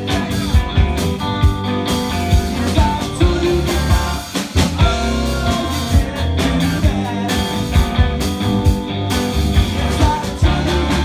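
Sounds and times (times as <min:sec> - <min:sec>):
drum beat: 0:00.0 - 0:11.0
live blues band playing: 0:00.0 - 0:11.0.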